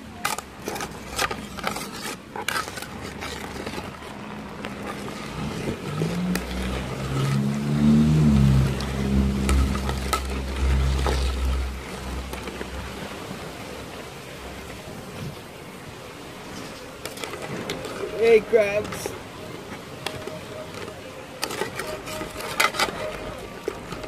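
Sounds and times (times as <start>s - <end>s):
vehicle engine passing by: 4.1s - 14.7s.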